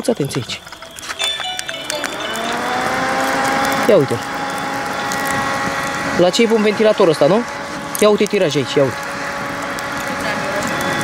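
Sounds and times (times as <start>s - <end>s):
small fan motor whine: 0.0s - 11.0s.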